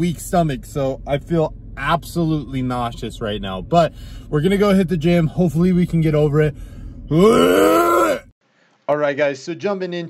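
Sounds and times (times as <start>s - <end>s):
man groaning in disgust: 7.1s - 8.3s.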